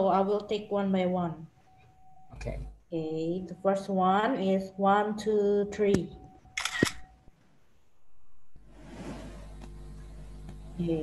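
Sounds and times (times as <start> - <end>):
camera shutter: 6.6 - 7.1.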